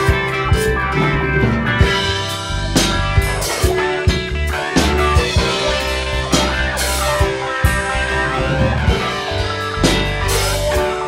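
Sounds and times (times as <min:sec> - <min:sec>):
electric guitars: 0:00.0 - 0:11.0
electronic keyboard: 0:00.0 - 0:11.0
steady drum beat: 0:00.0 - 0:11.0.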